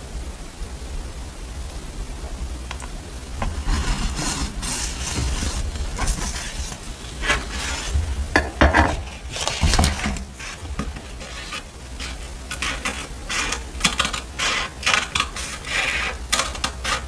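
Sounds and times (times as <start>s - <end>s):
paper rustling and crinkling: 3.4s - 17.0s
scissors snipping paper: 9.4s - 17.0s.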